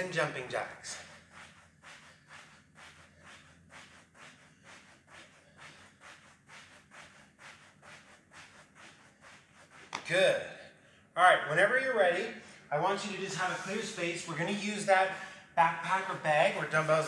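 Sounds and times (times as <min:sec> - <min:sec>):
soft footfalls on exercise mat: 0:01.3 - 0:10.3.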